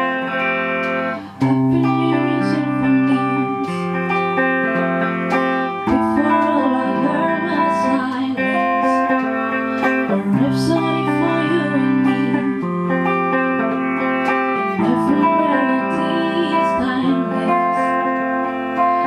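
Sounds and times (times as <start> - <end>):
electric guitars playing slow song: 0.0 - 19.0
woman singing: 0.0 - 19.0.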